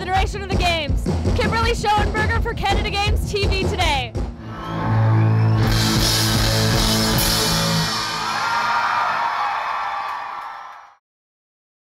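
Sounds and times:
rock band playing live: 3.5s - 8.9s.

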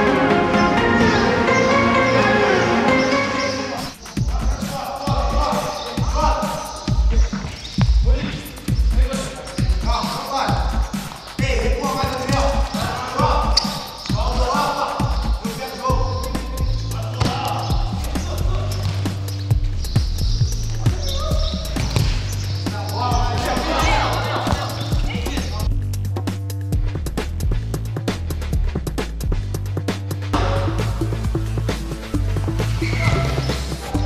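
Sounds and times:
background music with bass line: 0.0s - 34.0s
ball kicked and bouncing on concrete: 20.2s - 22.4s.

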